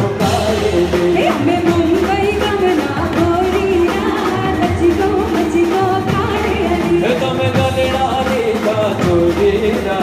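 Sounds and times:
man singing: 0.0 - 1.7, 6.9 - 10.0
live band with keyboard: 0.0 - 10.0
woman singing into microphone: 0.2 - 7.8.

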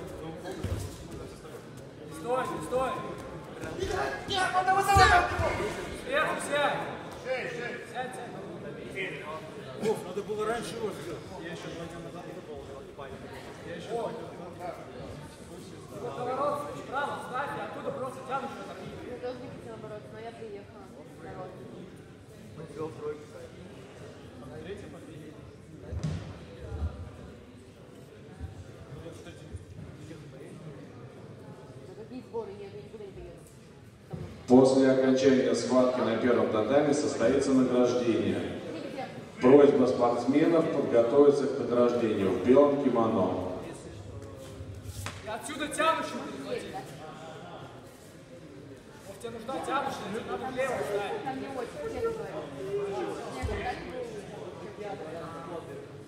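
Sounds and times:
murmur of voices in a hall: 0.0 - 56.0.

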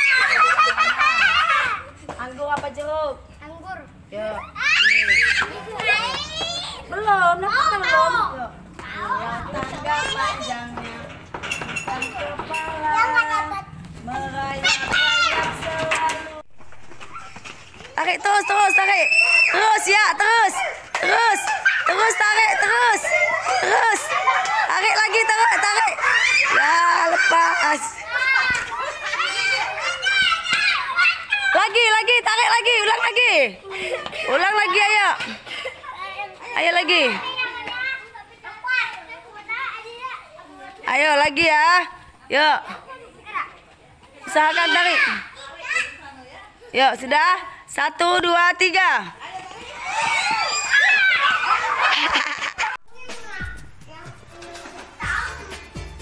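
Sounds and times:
children calling out and chattering: 0.0 - 2.4, 3.1 - 56.0.

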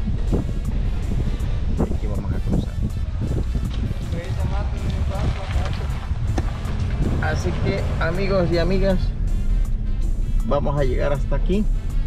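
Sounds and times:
background music with singing: 0.0 - 12.0
car driving rumble: 0.0 - 12.0.

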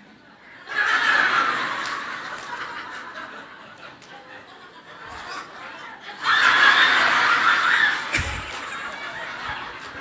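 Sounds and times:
audience laughing: 0.5 - 10.0.

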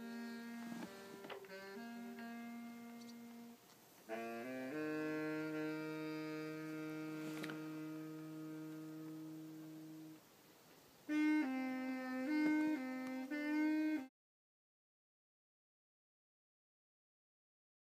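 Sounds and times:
saxophone playing: 0.0 - 10.2, 11.1 - 14.1.

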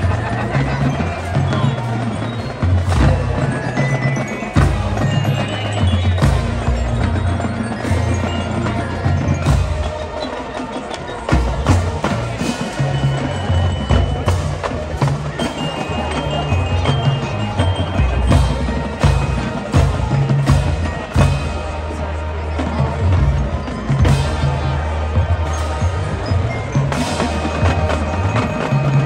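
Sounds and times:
marching band playing: 0.0 - 29.0.

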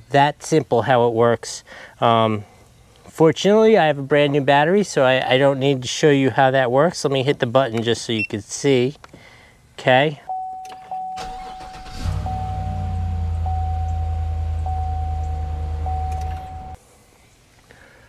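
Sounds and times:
vehicle engine starting and running: 11.2 - 16.8
electronic tone: 12.2 - 16.8.

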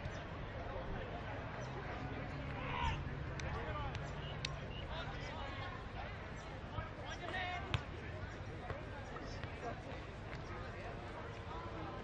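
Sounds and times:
distant players calling: 1.6 - 11.8.

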